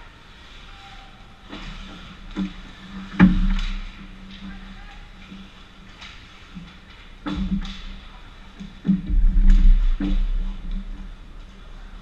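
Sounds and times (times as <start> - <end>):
low rumble: 7.3 - 12.0.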